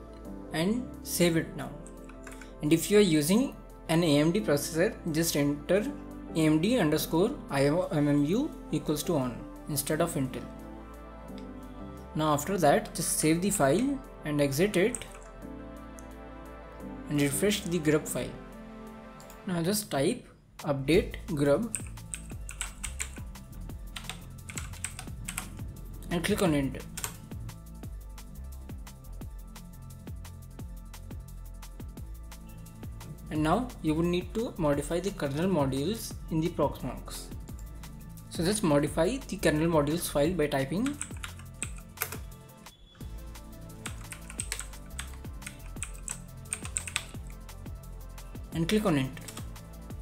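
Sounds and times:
keyboard typing clicks: 0:01.9 - 0:02.5, 0:14.9 - 0:15.4, 0:21.7 - 0:23.2, 0:40.8 - 0:42.2, 0:43.8 - 0:47.3
electronic music with steady beat: 0:04.2 - 0:19.5, 0:21.0 - 0:50.0.

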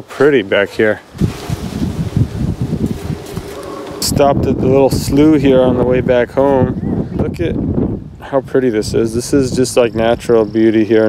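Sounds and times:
wind buffeting microphone: 0:01.0 - 0:10.8.

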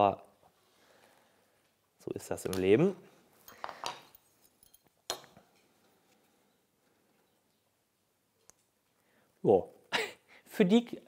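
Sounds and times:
metal square clinking: 0:03.4 - 0:05.4.

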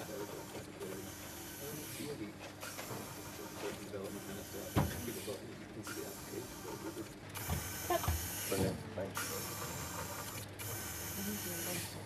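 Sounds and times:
prosthetic finger motors whirring: 0:00.0 - 0:12.0.

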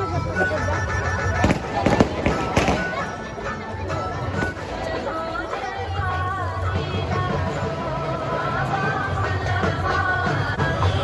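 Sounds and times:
crowd chatter: 0:00.0 - 0:11.0
music: 0:00.0 - 0:11.0
firecrackers banging: 0:01.3 - 0:03.6.

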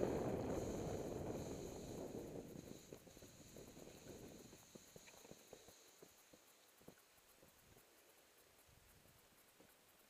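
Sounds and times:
faint steady high whine: 0:00.0 - 0:10.0.

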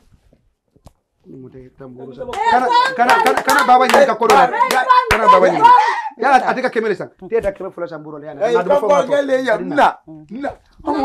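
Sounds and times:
voices speaking over each other: 0:02.0 - 0:06.3
sharp hand claps: 0:02.3 - 0:05.7.

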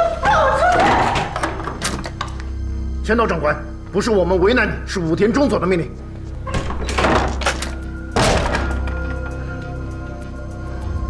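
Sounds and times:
background music: 0:00.0 - 0:11.0
heavy wooden thunks: 0:06.4 - 0:09.1.

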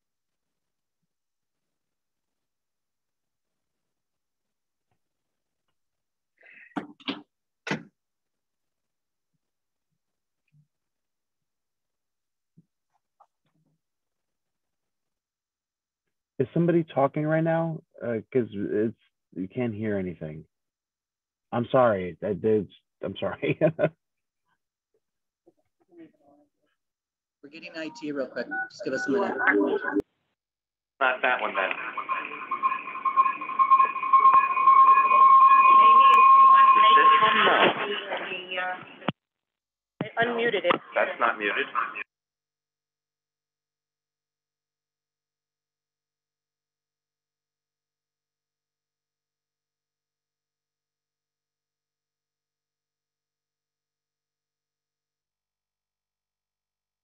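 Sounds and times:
audio feedback howl: 0:31.4 - 0:37.8.

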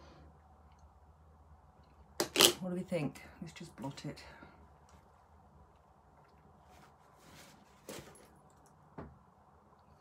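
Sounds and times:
paper tissue rustling: 0:06.6 - 0:08.4.

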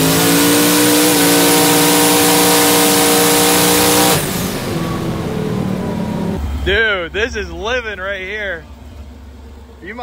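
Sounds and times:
race car engine at full throttle: 0:00.0 - 0:10.0.

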